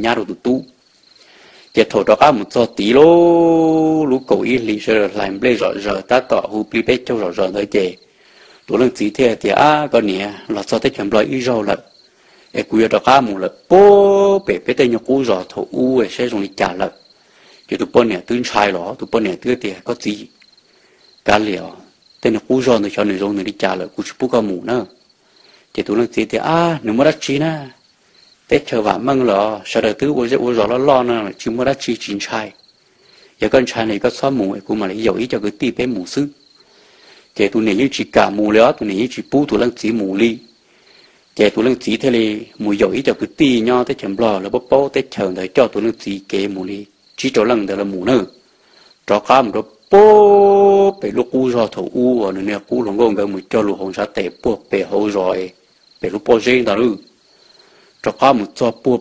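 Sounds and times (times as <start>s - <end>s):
man narrating: 0.0s - 0.8s, 1.7s - 8.1s, 8.7s - 17.0s, 17.7s - 20.4s, 21.2s - 25.0s, 25.7s - 27.8s, 28.5s - 32.6s, 33.4s - 36.4s, 37.4s - 40.6s, 41.4s - 48.4s, 49.0s - 57.1s, 58.0s - 59.0s
faint crickets chirping: 0.0s - 59.0s.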